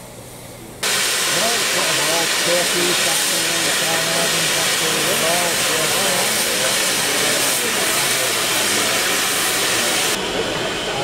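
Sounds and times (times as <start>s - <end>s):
steam hissing from safety valves: 0.8s - 11.0s.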